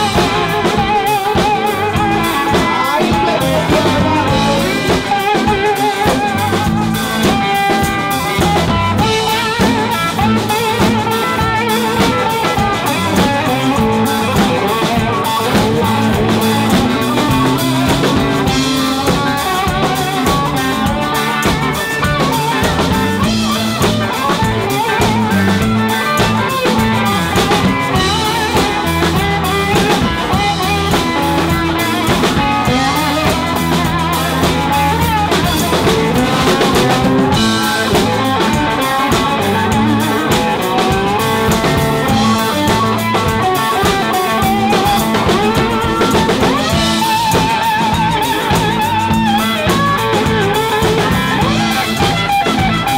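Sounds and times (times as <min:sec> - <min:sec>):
drum kit beat: 0:00.0 - 0:52.9
electric bass: 0:00.0 - 0:52.9
electric guitars: 0:00.0 - 0:52.9.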